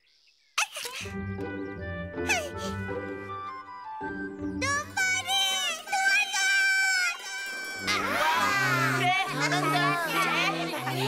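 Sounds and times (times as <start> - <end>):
cartoon background music: 0.9 - 11.0
cartoon characters calling out: 4.6 - 11.0.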